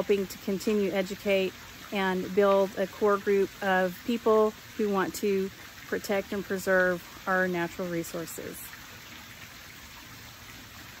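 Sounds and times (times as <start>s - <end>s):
backyard ambience hiss: 0.0s - 11.0s.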